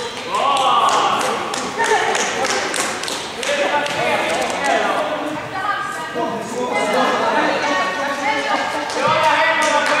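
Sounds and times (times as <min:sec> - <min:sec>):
voices talking in a sports hall: 0:00.0 - 0:10.0.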